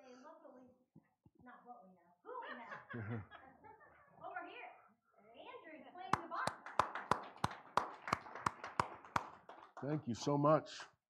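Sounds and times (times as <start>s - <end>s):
rhythmic hand clapping: 6.1s - 10.3s.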